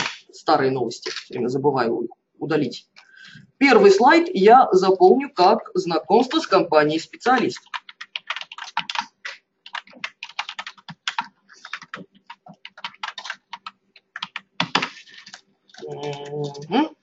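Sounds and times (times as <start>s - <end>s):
typing on computer keyboard: 7.3s - 16.7s.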